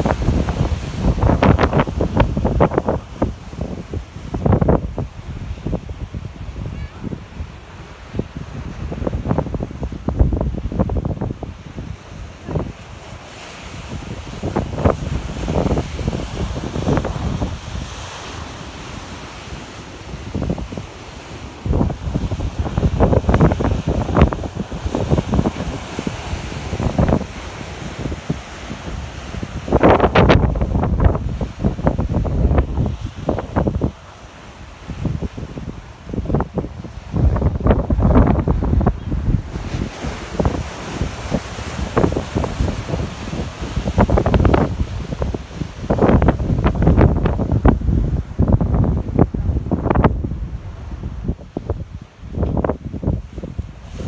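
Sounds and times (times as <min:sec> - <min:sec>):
surf breaking on rocky shore: 0:00.0 - 0:54.0
wind buffeting microphone: 0:00.0 - 0:54.0.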